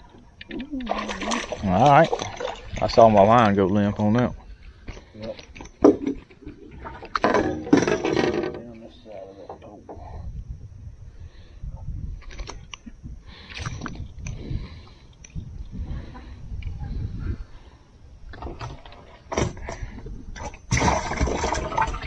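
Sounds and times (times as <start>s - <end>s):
fish handling clicks and knocks: 4.8s - 8.8s.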